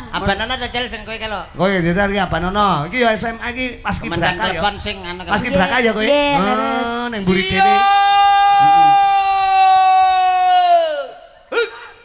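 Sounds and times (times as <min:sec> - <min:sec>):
man yelling a long high note: 0:06.4 - 0:11.1.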